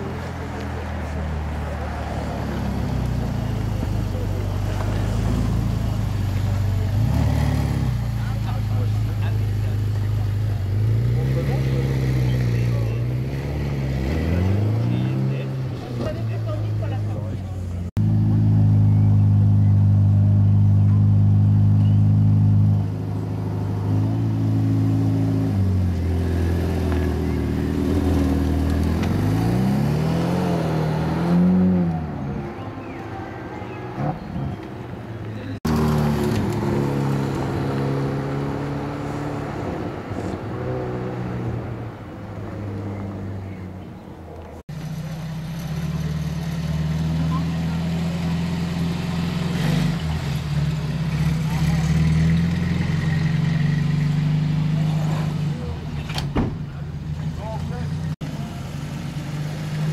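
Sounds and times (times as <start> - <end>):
car engine revving: 0.0 - 32.9, 33.8 - 43.8, 44.6 - 56.1.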